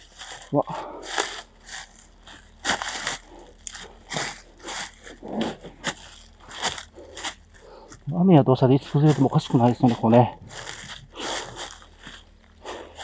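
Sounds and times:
footsteps crunching on dry leaves: 0.0 - 13.0.

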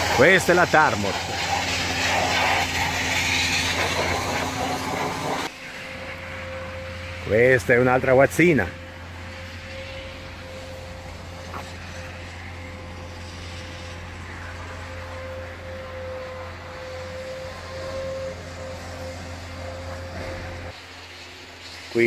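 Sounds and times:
low machine hum: 0.0 - 21.8
faint held whine: 0.0 - 22.0.

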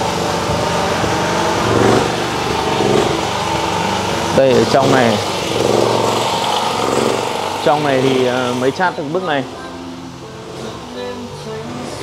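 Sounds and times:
small engine running: 0.0 - 9.5.

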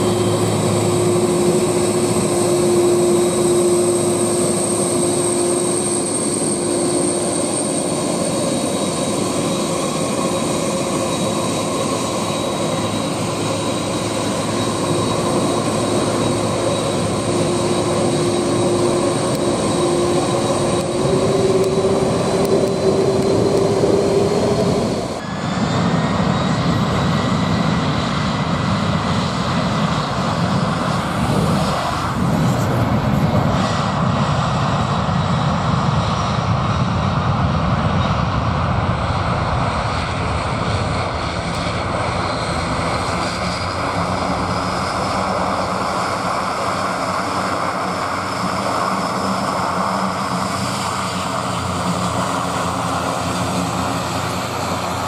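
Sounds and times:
high jet whine: 0.0 - 55.0
loud jet engine noise: 0.0 - 55.0.

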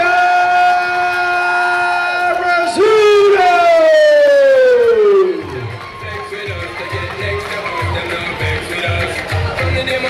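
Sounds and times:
announcer over loudspeaker: 0.0 - 5.7.

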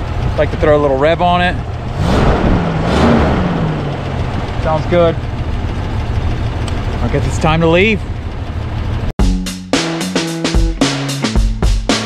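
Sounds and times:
car engine idling: 0.0 - 9.2
drum-led music: 9.2 - 12.0.

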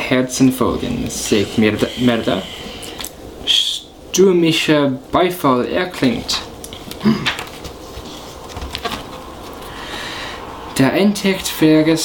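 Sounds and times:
steady background hiss: 0.0 - 12.0
paper page rustling: 6.8 - 9.7.

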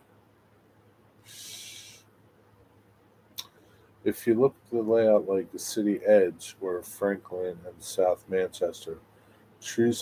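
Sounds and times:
faint room hum: 0.0 - 10.0
short breath close to microphone: 1.2 - 2.1, 9.1 - 9.6.

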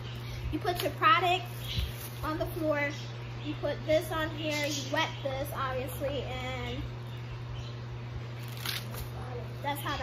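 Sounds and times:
air conditioner humming: 0.0 - 10.0.

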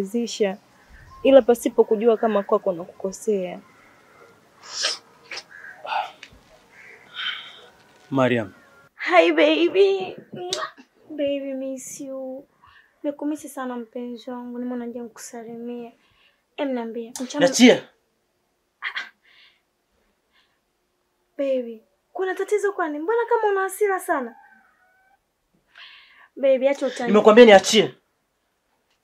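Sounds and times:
person breathy noise: 5.8 - 6.2, 7.1 - 7.8
faint breath: 6.8 - 7.9, 12.5 - 13.0, 16.0 - 16.5, 19.2 - 20.7, 25.7 - 26.4.

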